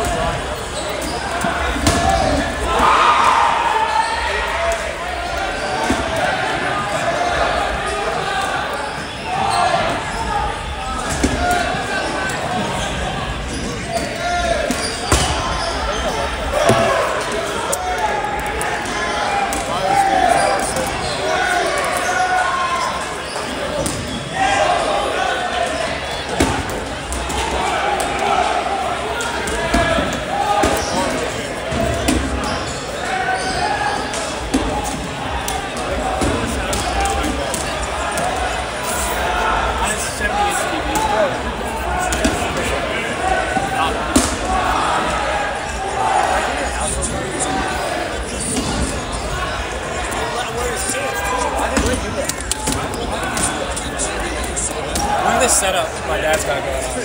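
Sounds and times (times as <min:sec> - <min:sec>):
babble of voices: 0:00.0 - 0:57.0
balls bouncing on gym floor: 0:01.0 - 0:02.5, 0:42.0 - 0:42.6, 0:51.6 - 0:53.6.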